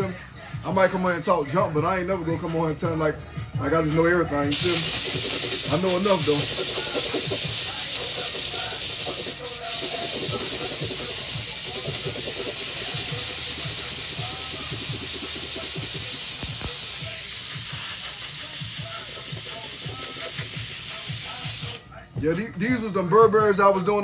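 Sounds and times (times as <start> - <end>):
steam hissing: 4.5 - 21.8.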